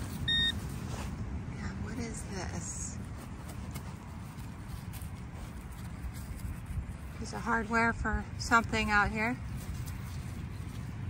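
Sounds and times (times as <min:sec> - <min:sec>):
metal detector beep: 0:00.2 - 0:00.6.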